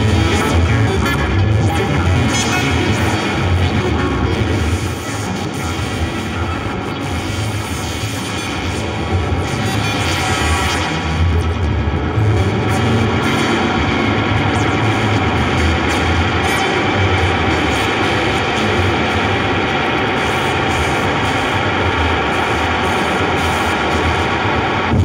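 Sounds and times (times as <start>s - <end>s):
noisy synthesizer drone: 0.0s - 25.0s.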